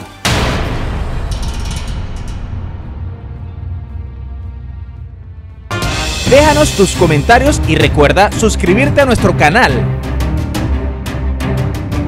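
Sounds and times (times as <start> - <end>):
dramatic low rumble hit: 0.2 - 8.0.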